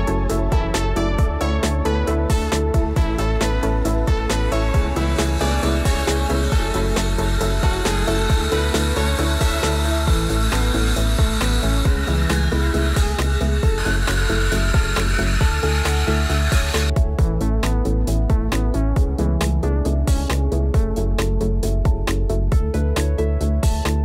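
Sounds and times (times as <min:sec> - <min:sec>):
electronic music with steady beat: 0:00.0 - 0:24.0
circular saw cutting board: 0:03.3 - 0:17.0.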